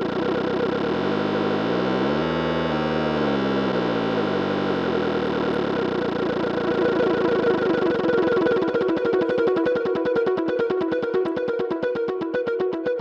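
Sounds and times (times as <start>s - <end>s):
low synth tone sliding: 0.0s - 8.4s.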